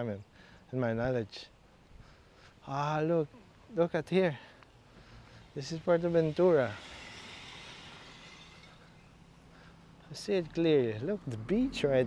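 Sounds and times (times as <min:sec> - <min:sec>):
low outdoor hiss: 0:00.0 - 0:12.0.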